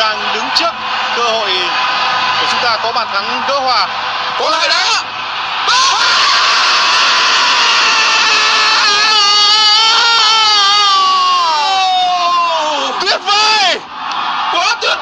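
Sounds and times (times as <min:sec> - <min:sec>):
crowd roaring: 0:00.0 - 0:15.0
commentator screaming: 0:04.4 - 0:13.8.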